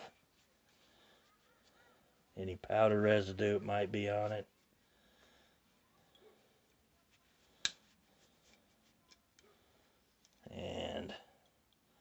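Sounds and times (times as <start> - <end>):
cloth rubbing on metal: 0.0 - 4.9, 6.5 - 9.2.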